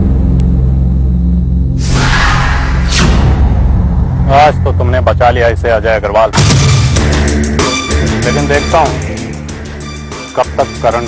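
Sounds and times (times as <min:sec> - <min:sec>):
rumble: 0:00.0 - 0:07.6
low droning tones: 0:00.0 - 0:10.1
loud rush of noise: 0:01.8 - 0:06.4.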